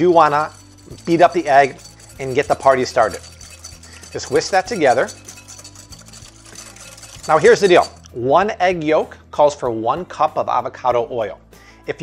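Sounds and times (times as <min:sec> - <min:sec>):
whisk beating liquid in glass bowl: 0:00.0 - 0:08.0.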